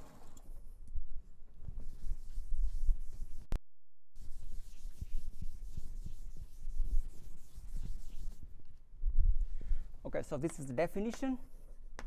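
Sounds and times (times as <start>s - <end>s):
eraser rubbing on chalkboard: 1.9s - 3.5s, 4.2s - 8.4s.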